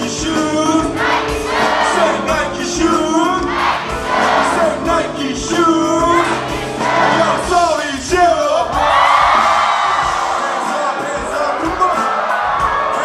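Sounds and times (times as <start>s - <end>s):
hip-hop backing track: 0.0s - 13.0s
person singing: 0.0s - 13.0s
audience singing along: 0.7s - 13.0s.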